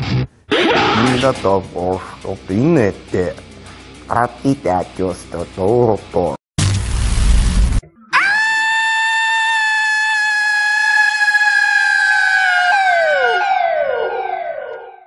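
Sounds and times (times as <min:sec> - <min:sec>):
burst of loud static: 0:06.6 - 0:07.8.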